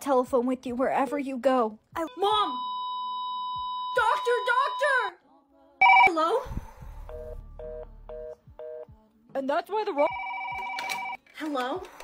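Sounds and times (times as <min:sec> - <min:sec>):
telephone busy tone beeps: 0:05.8 - 0:06.2, 0:10.1 - 0:11.2.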